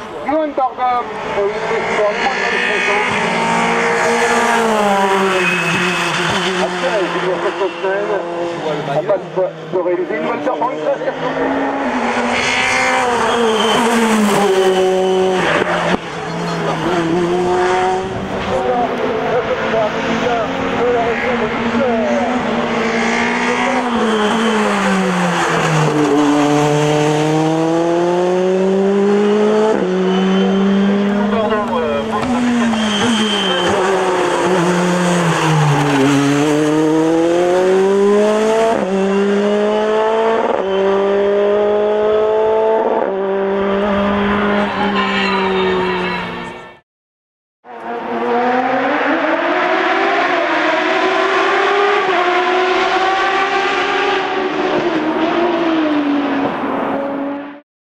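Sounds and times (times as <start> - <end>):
race car engine at high revs: 0.0 - 46.6, 47.6 - 57.6.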